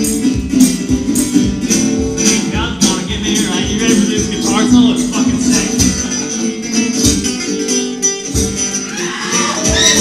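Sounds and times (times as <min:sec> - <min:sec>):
low drum beat: 0:00.0 - 0:06.3, 0:06.9 - 0:07.4
folk-punk band playing loudly: 0:00.0 - 0:10.0
strummed acoustic guitar: 0:00.0 - 0:10.0.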